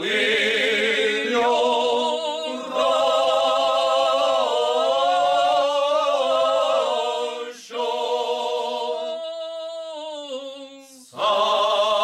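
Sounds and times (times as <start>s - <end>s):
male voices singing unaccompanied: 0.0s - 12.0s.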